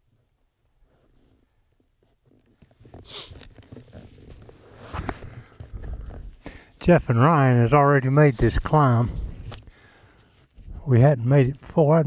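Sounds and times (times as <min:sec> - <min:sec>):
camera handling bumps and rubbing: 0:02.0 - 0:06.4.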